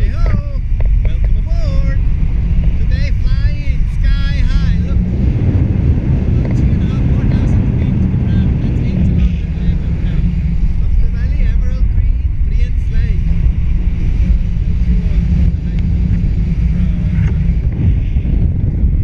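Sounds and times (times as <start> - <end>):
wind noise on microphone: 0.0 - 19.0.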